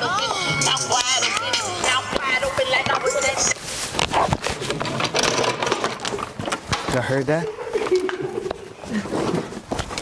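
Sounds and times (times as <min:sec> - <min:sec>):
rustling: 0:01.9 - 0:10.0.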